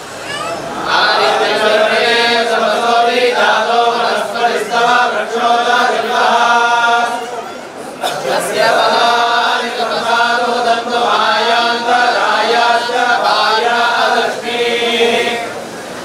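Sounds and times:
priests chanting together: 0.7 - 15.6.

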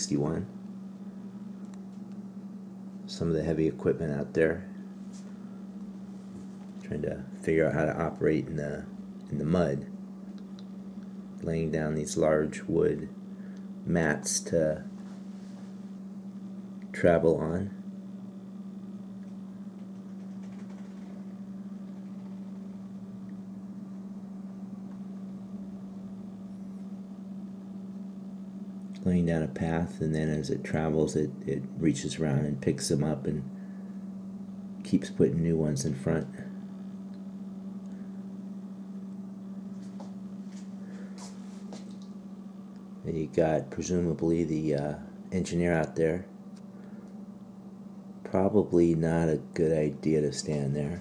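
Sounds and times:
low hum of room tone: 0.0 - 51.0.

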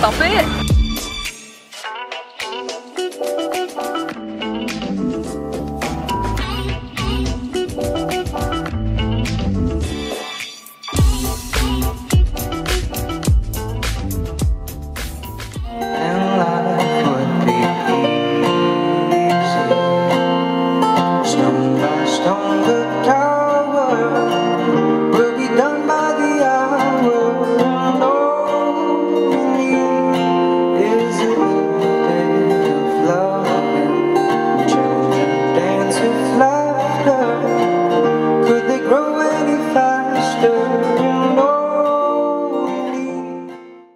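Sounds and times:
acoustic guitar: 0.0 - 43.9
person singing: 6.2 - 7.9, 15.6 - 43.6.

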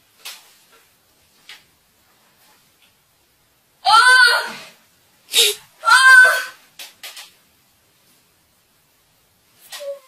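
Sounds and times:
boy wailing: 3.9 - 4.7, 5.4 - 6.6.

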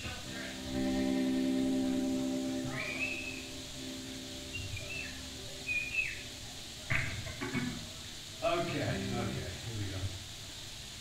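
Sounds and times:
band sustained chord: 0.0 - 6.9
audience whistling: 2.5 - 6.4.

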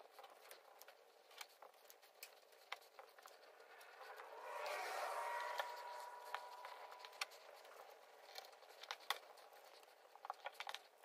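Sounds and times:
steady tone: 3.2 - 8.7
wash of noise: 3.6 - 7.4.

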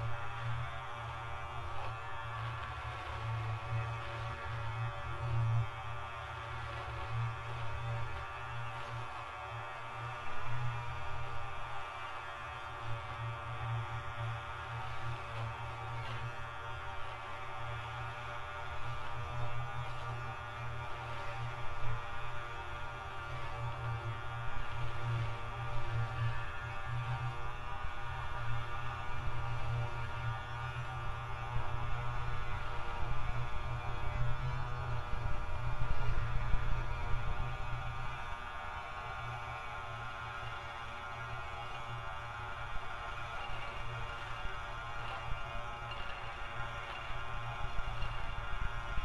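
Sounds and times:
low buzzing drone: 0.0 - 49.0.

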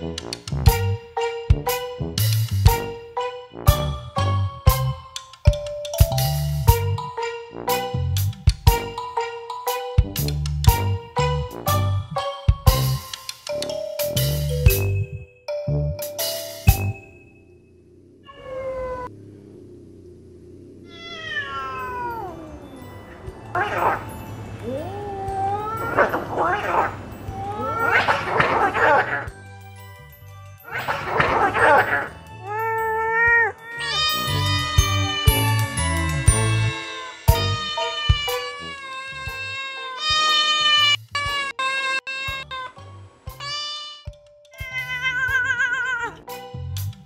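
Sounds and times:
background music: 0.0 - 17.6, 21.8 - 47.0
cat-like meowing and yowling: 18.2 - 19.1, 20.7 - 29.1, 30.7 - 42.7, 43.5 - 46.2.

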